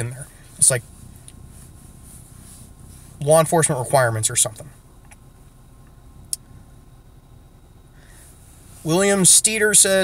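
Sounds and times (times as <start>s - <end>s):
car cabin hum: 0.0s - 10.0s.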